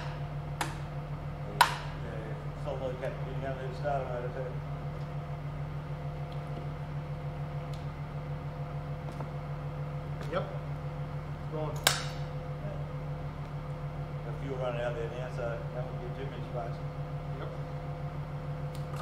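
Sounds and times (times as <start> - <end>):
engine idling: 0.0 - 19.0.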